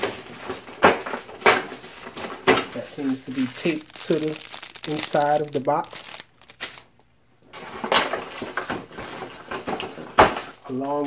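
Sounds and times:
packaging rustling in cardboard box: 0:00.0 - 0:06.9.

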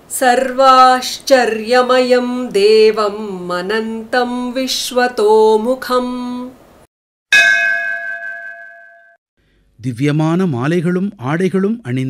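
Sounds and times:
bell ringing: 0:07.3 - 0:09.2.

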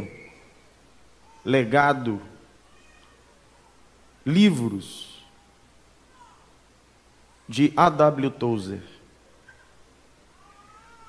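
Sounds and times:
man speaking: 0:00.0 - 0:00.2, 0:01.5 - 0:02.4, 0:04.3 - 0:05.3, 0:07.5 - 0:09.0.

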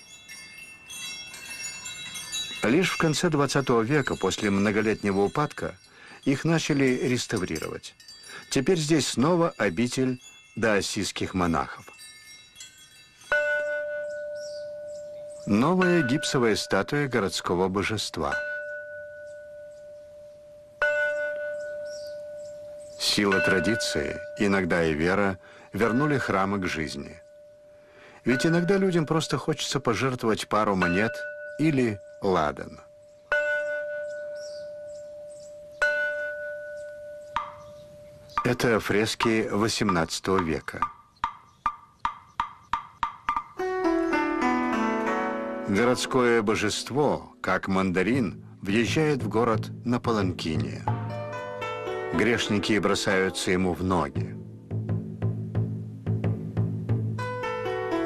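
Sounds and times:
bell ringing: 0:00.0 - 0:39.6, 0:43.6 - 0:54.6
wood block knocks: 0:37.3 - 0:37.7, 0:38.3 - 0:43.6
background music: 0:43.5 - 0:58.0.

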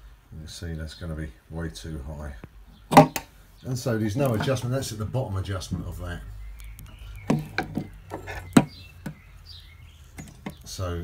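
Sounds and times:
handling knocks and clicks: 0:02.9 - 0:03.3, 0:06.6 - 0:09.2, 0:10.2 - 0:10.7.

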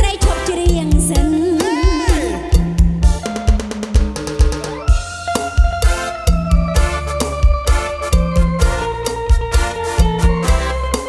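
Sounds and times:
bass line: 0:00.0 - 0:11.0
drum beat: 0:00.0 - 0:11.0.

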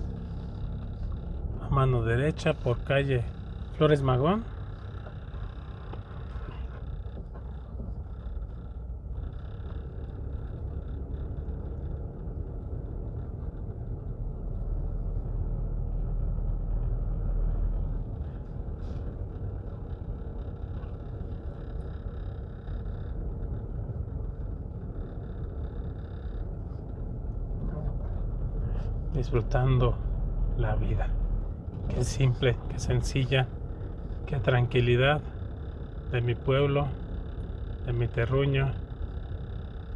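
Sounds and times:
car engine and road noise: 0:00.0 - 0:39.9.

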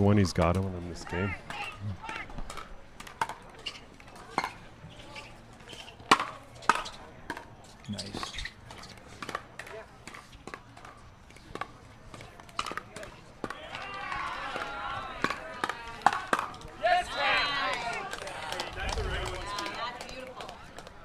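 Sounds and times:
paddles hitting plastic ball: 0:08.6 - 0:16.7.

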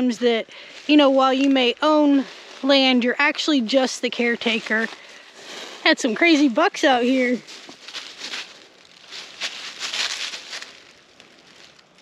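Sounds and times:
footsteps in dry leaves: 0:00.4 - 0:12.0.

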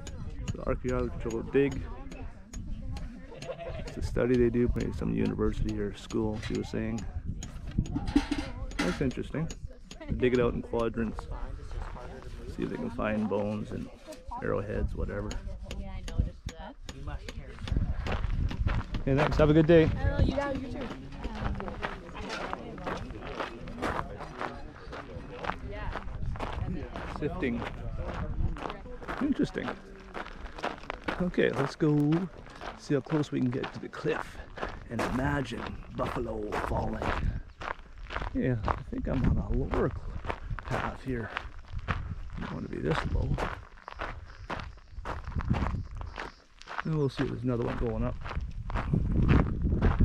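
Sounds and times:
people talking: 0:00.0 - 0:18.0, 0:19.0 - 0:37.4, 0:38.3 - 0:41.4, 0:42.3 - 0:43.6, 0:46.8 - 0:48.2
footsteps on gravel: 0:18.0 - 0:50.0.

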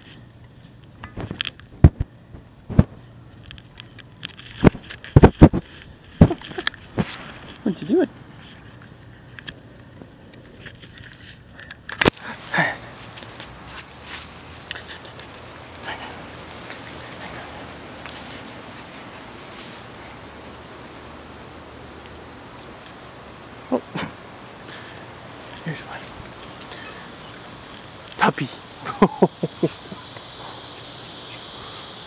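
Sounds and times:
steady hiss: 0:00.0 - 0:32.0
puppies high vocal sounds: 0:12.2 - 0:31.9.

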